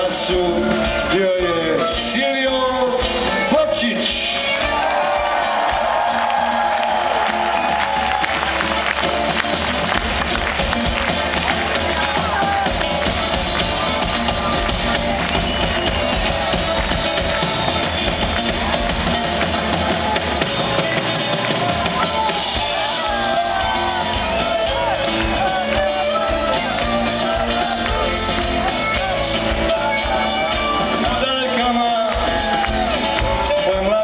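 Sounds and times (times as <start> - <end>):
live band playing: 0.0 - 34.0.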